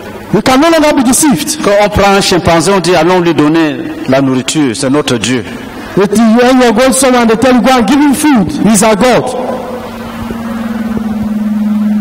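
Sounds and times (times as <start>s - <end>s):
steady low-pitched hum: 0.0s - 12.0s.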